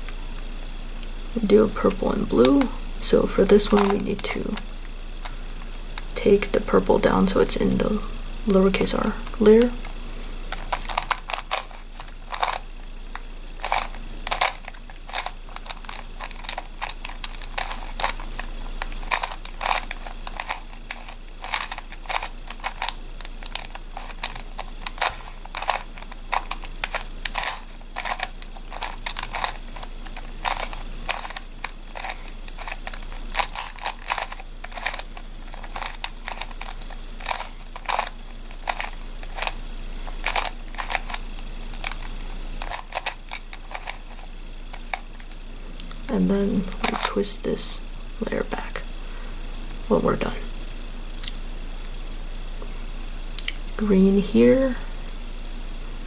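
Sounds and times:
plastic puzzle clicking and rattling: 0:03.4 - 0:04.9, 0:10.5 - 0:45.2, 0:46.7 - 0:47.4.

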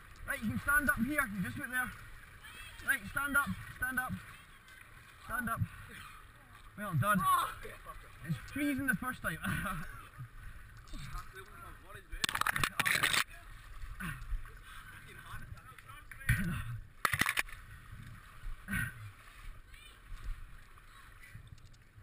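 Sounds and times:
water rushing: 0:00.0 - 0:22.0
water sloshing and splashing: 0:00.0 - 0:22.0.

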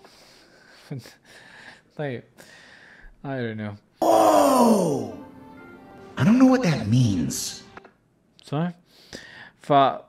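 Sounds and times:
cartoon character groaning: 0:04.0 - 0:05.2.

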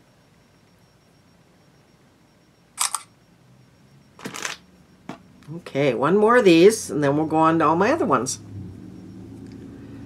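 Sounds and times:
camera shutter click: 0:02.8 - 0:03.1.

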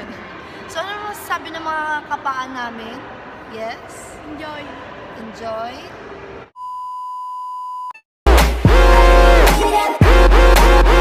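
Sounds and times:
high electronic beep: 0:06.6 - 0:08.0.

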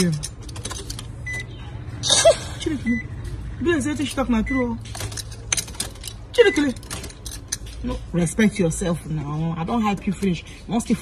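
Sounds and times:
car keys rattling: 0:00.0 - 0:01.6, 0:03.9 - 0:08.6, 0:09.7 - 0:10.5.

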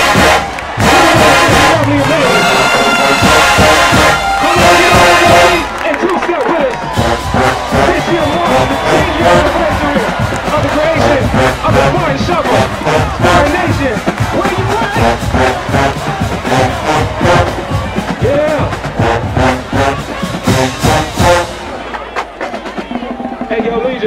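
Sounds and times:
crowd cheering: 0:00.0 - 0:24.0
marching band brass: 0:00.0 - 0:24.0
steady drum beat: 0:00.0 - 0:24.0.

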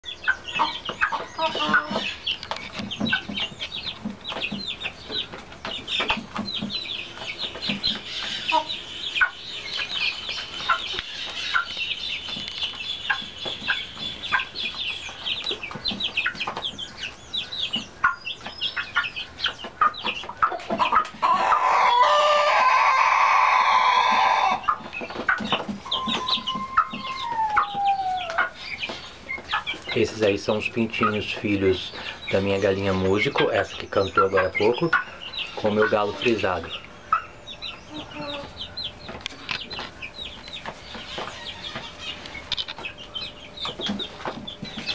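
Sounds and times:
chicks cheeping: 0:00.0 - 0:44.9
chicken clucking: 0:00.1 - 0:44.9
hen crowing: 0:21.2 - 0:24.7, 0:25.8 - 0:28.6.

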